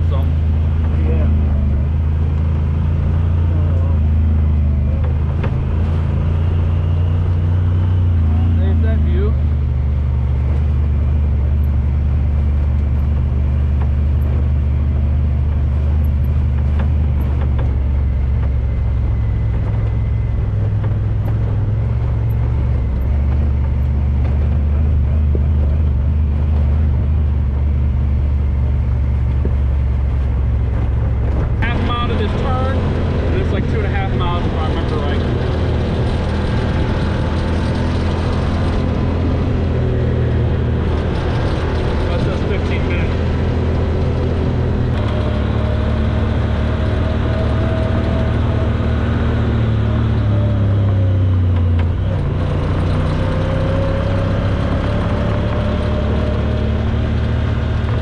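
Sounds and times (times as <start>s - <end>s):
vehicle engine low drone: 0.0s - 58.0s.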